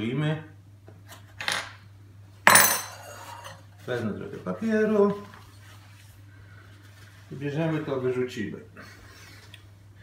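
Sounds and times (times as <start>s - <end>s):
knife clattering down: 2.5s - 3.6s.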